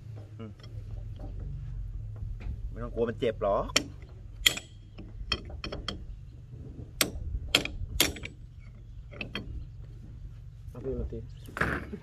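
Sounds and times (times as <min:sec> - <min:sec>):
low steady hum: 0:00.0 - 0:12.0
ratchet wrench clicking: 0:03.7 - 0:06.0.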